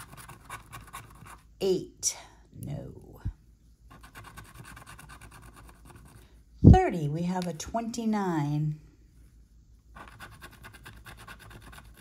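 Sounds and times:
scratching lottery ticket: 0.0 - 1.5, 3.9 - 6.2, 9.9 - 12.0.

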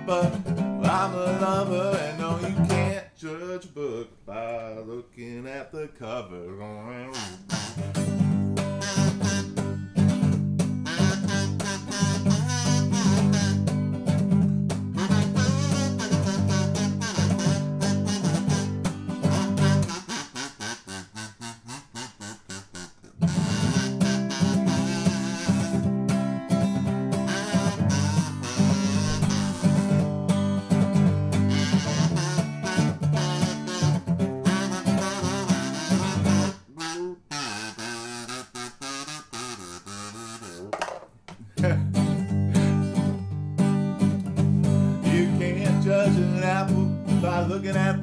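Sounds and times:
kazoo buzzing notes: 0.0 - 2.8, 7.1 - 14.1, 14.9 - 40.8
blues harmonica: 0.0 - 3.0, 7.1 - 40.7, 41.6 - 48.0
strummed acoustic guitar: 0.0 - 3.0, 7.4 - 20.1, 23.2 - 36.6, 41.6 - 48.0.

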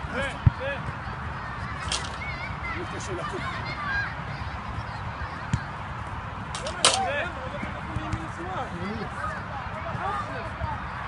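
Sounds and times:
distant shouts and voices: 0.0 - 11.0.

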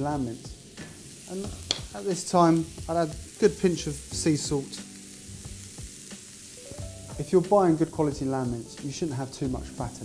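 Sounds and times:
background music: 0.0 - 10.0
vegetables sizzling in oil: 0.0 - 10.0.

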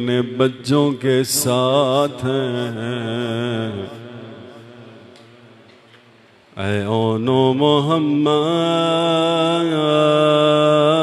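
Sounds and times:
man chanting: 0.0 - 5.2, 6.6 - 11.0.

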